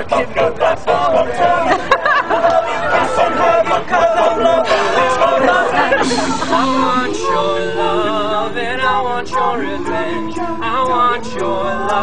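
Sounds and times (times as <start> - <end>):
men chanting a cappella: 0.0 - 12.0.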